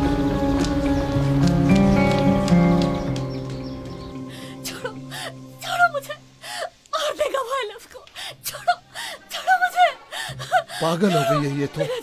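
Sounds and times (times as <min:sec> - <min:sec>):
woman sobbing and wailing: 0:08.3 - 0:12.0.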